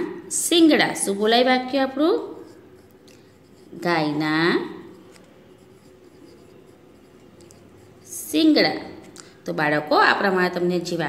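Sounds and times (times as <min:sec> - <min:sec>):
pencil writing on paper: 0:02.2 - 0:09.1.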